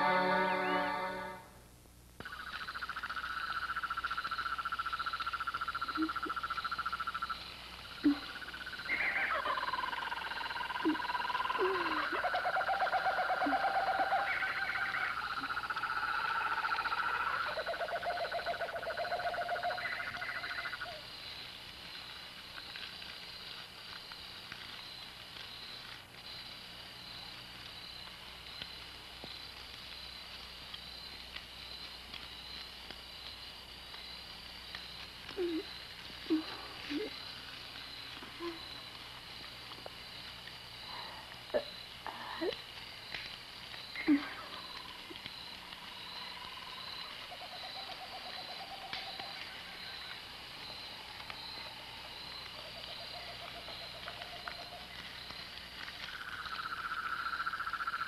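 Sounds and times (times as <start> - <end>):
insects chirping: 0.0 - 1.4, 2.2 - 58.0
frogs croaking: 2.2 - 58.0
owls hooting: 8.9 - 21.0.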